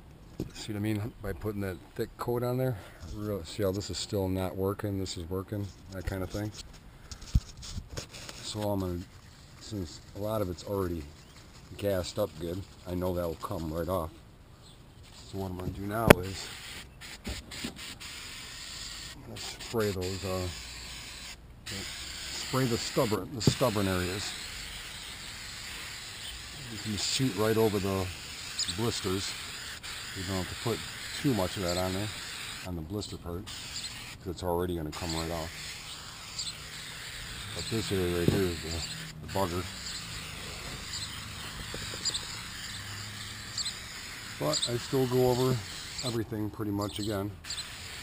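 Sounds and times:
aerosol can spraying: 15.4 - 32.7, 33.5 - 34.2, 34.9 - 46.2, 46.9 - 48.0
high bird chirps: 33.5 - 34.2, 35.0 - 46.2, 46.8 - 47.9.

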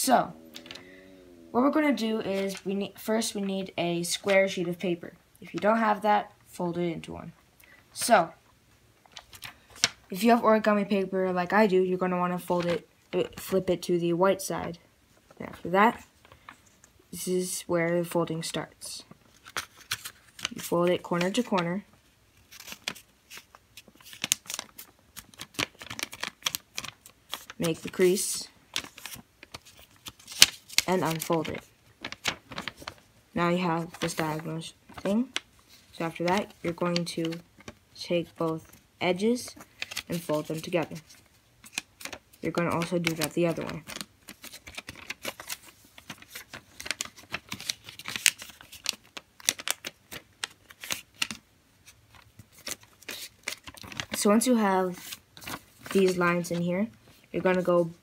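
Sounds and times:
paper crinkling while folded: 0.0 - 6.0, 9.0 - 10.0, 19.1 - 58.0.

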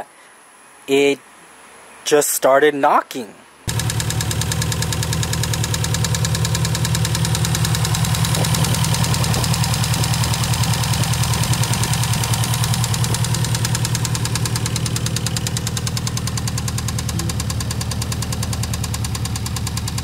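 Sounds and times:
engine idling: 3.7 - 20.0.

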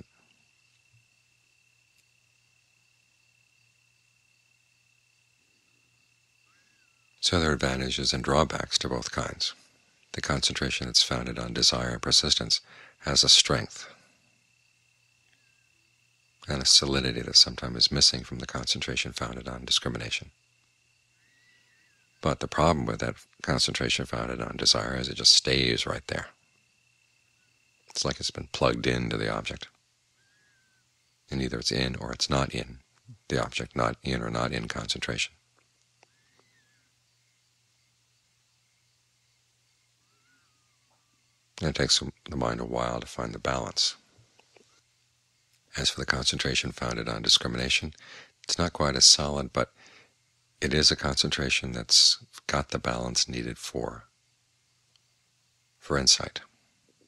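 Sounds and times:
faint high-pitched whine: 0.0 - 57.0
steady low hum: 0.0 - 57.0.

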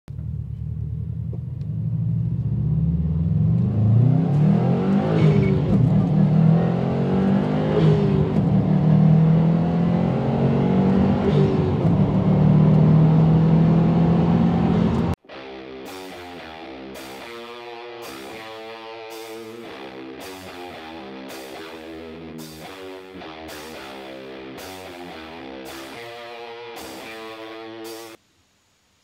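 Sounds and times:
car engine accelerating: 0.1 - 15.2.

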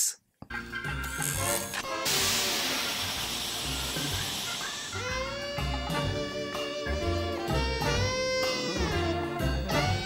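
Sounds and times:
hissing smoke burst: 2.0 - 5.6.

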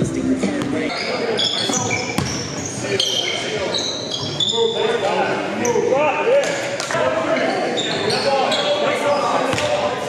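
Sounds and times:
sneakers squeaking: 0.4 - 5.8, 7.4 - 10.0.

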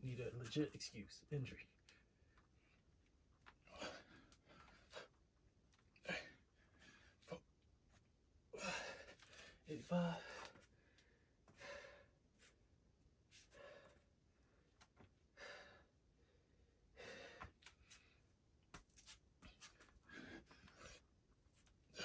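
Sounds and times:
man breathing hard: 3.7 - 5.2, 8.6 - 12.2, 13.4 - 14.1, 15.3 - 18.2.

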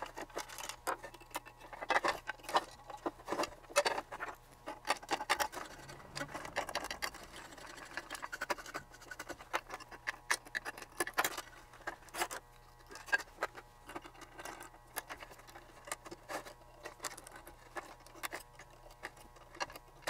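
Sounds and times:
faint steady hum: 0.0 - 20.0
metal tool clicking on chassis: 4.8 - 11.4.

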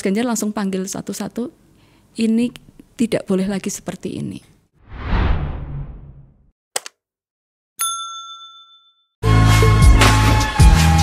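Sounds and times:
bright bell chime: 7.8 - 9.1.

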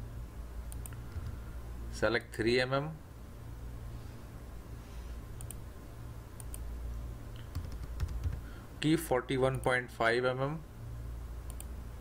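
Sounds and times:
steady low hum: 0.0 - 12.0
computer mouse clicks: 0.7 - 1.4, 5.4 - 5.6, 6.4 - 6.7, 7.4 - 8.4, 11.5 - 11.7.

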